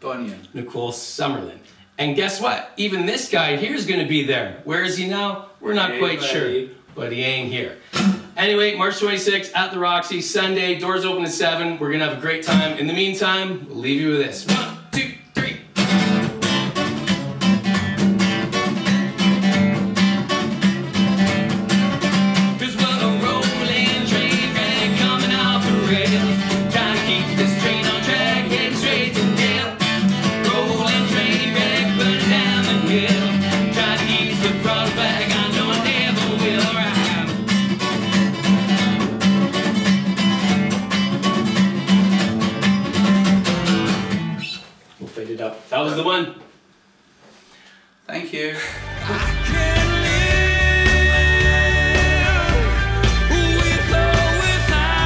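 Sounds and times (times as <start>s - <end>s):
person singing: 5.9s - 6.4s, 22.5s - 37.4s, 48.7s - 55.0s
strummed acoustic guitar: 7.9s - 8.4s, 12.4s - 12.9s, 15.4s - 44.6s, 48.8s - 55.0s
plucked double bass: 48.8s - 55.0s.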